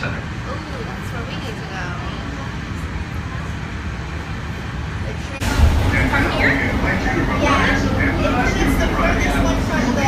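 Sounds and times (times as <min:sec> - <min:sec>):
train cabin rumble: 0:01.1 - 0:10.0.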